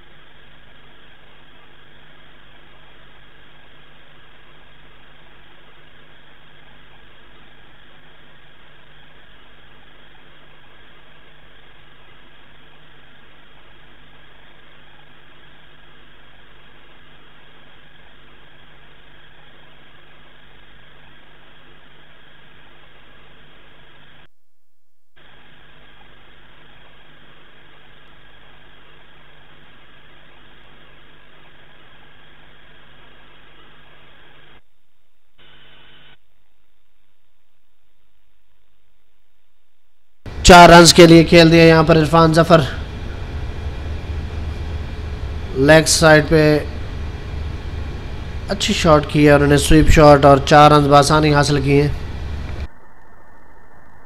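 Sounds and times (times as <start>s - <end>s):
droning hum with hiss: 0.0s - 54.0s.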